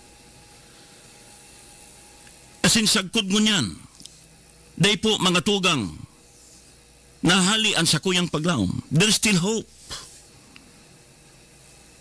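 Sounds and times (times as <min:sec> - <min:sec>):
faint steady hiss: 0:00.0 - 0:12.0
thin hum tones: 0:00.0 - 0:12.0.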